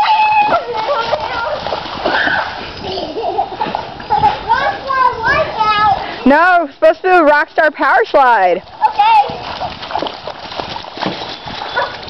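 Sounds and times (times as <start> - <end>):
children shouting and squealing: 0.0 - 6.2, 11.5 - 12.0
feet splashing through puddle: 0.4 - 2.8, 8.7 - 12.0.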